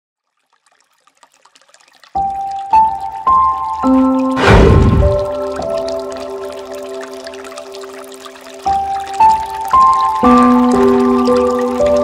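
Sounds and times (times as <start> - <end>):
small drips and ticks: 0.2 - 4.4, 5.2 - 12.0
faint trickling water: 0.2 - 12.0.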